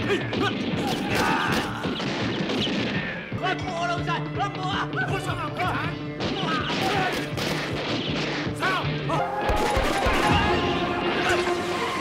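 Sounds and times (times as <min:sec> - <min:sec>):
dramatic background music: 0:00.0 - 0:12.0
handgun shots: 0:06.2 - 0:08.6.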